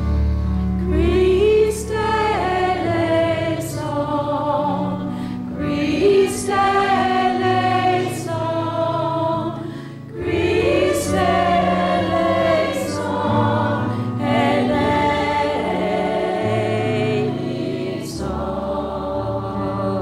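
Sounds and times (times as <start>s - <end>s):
church choir singing: 0.8s - 20.0s.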